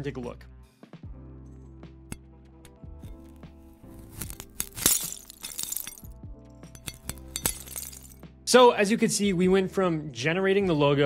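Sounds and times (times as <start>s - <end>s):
background music with steady tones: 0.0s - 11.0s
glass cracking and shattering: 3.0s - 6.1s, 6.8s - 8.2s
knife cutting through glass: 3.0s - 6.1s, 6.8s - 8.2s.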